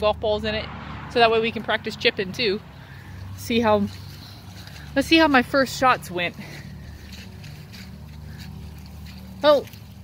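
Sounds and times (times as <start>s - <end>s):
footsteps through wet grass: 2.3s - 10.0s.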